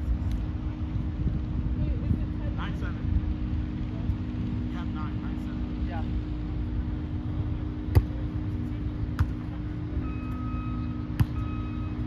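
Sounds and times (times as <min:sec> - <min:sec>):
engine rumble: 0:00.0 - 0:12.0
reversing alarm beeping: 0:09.9 - 0:12.0.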